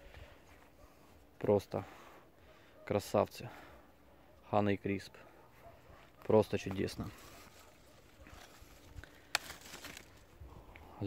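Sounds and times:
leaves and branches rustling: 5.8s - 10.9s
scratchy handling noise: 6.8s - 10.3s
stem snapping: 8.3s - 10.8s.

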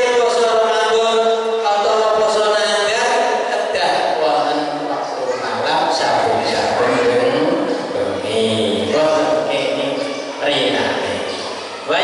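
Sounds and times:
man chanting into a microphone: 5.9s - 10.0s.

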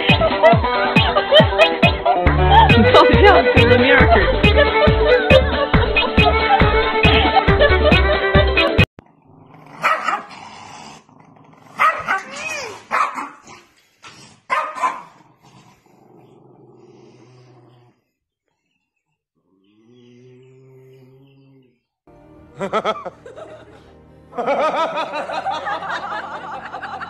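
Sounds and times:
music: 0.0s - 8.9s, 22.1s - 27.0s
dog barking and growling: 9.0s - 18.0s.

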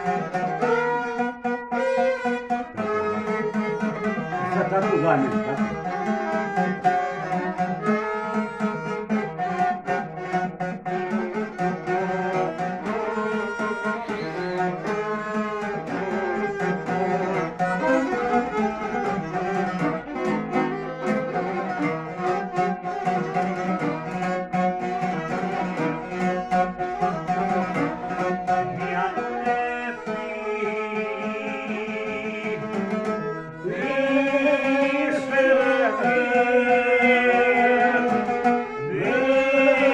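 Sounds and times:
plucked lute rhythm: 0.0s - 39.9s
violins bowing melody: 0.0s - 39.9s.

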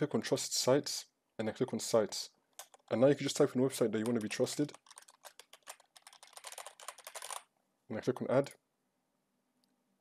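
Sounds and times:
fast typing on keyboard: 2.6s - 3.0s, 3.9s - 7.4s.

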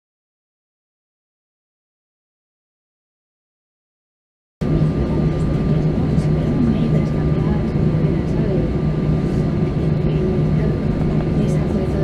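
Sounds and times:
airliner cabin drone: 4.6s - 12.0s
passengers murmuring: 4.6s - 12.0s.

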